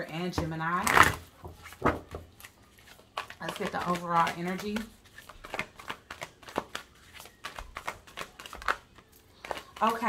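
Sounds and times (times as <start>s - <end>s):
cards being shuffled: 0.8s - 10.0s.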